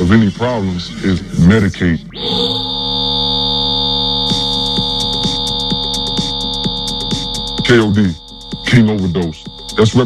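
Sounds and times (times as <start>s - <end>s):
high-pitched electronic tone: 2.1s - 10.0s
low hum: 2.1s - 10.0s
soft ticking pulse: 2.2s - 10.0s.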